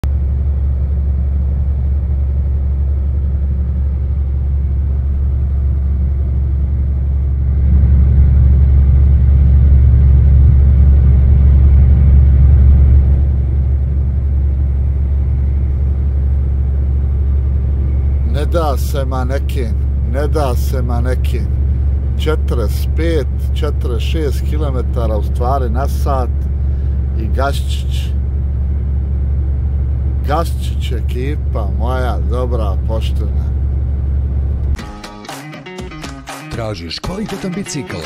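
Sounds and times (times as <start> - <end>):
diesel truck engine drone: 0.0 - 38.0.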